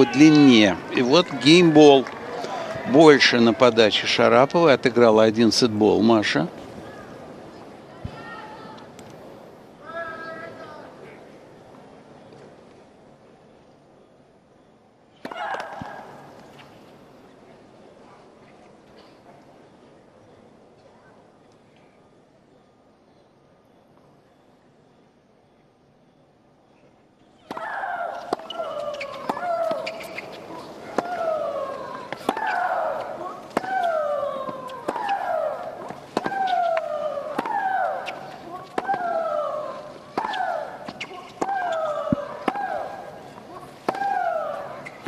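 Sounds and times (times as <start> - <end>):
racket striking tennis ball: 27.5 - 39.2, 40.1 - 42.9, 43.8 - 45.0.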